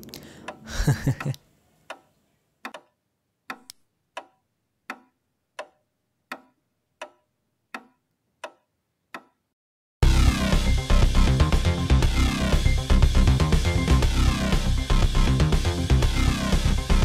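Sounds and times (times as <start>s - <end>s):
clock ticking: 0.0s - 9.4s.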